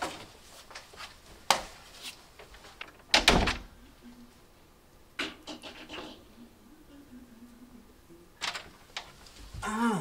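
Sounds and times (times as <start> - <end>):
door banging and rattling: 3.1 - 3.7.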